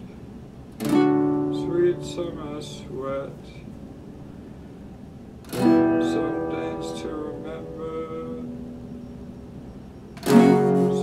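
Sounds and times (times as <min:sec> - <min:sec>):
acoustic guitar chord ringing: 0:00.7 - 0:04.8, 0:05.4 - 0:11.0.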